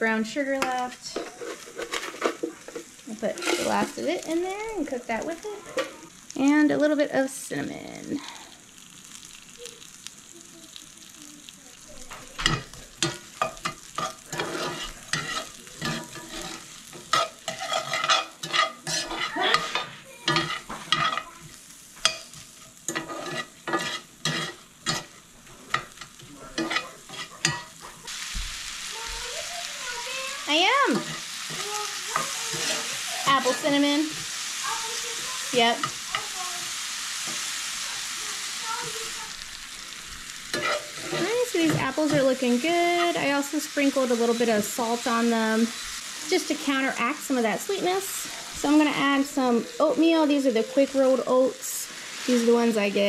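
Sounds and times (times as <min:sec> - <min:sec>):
apples sizzling in a skillet: 0:00.0 - 0:53.0
metal spoon scraping a pan: 0:00.6 - 0:06.1, 0:12.1 - 0:28.2, 0:28.9 - 0:37.6, 0:38.2 - 0:49.8.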